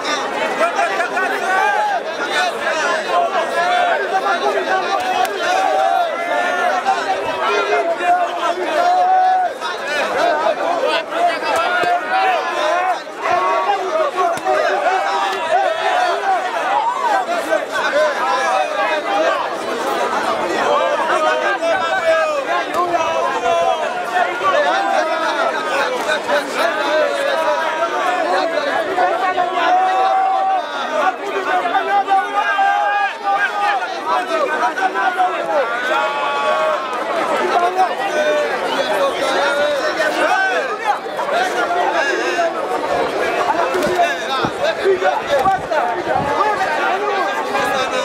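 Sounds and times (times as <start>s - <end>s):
crowd shouting and talking: 0.0s - 48.0s.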